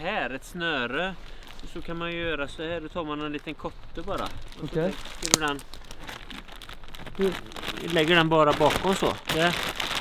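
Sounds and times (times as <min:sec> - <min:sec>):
plastic tarp crinkling: 0:00.6 - 0:10.0.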